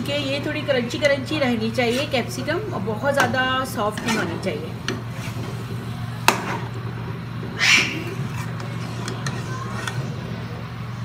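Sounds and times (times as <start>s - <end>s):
gas flame: 0.0s - 11.0s
steady low hum: 0.0s - 11.0s
spatula stirring in a pan: 1.6s - 2.4s, 3.1s - 6.7s, 8.0s - 10.2s.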